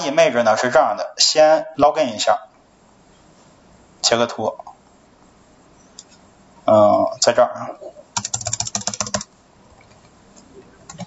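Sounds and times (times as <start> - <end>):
fast keyboard typing: 8.2 - 9.3.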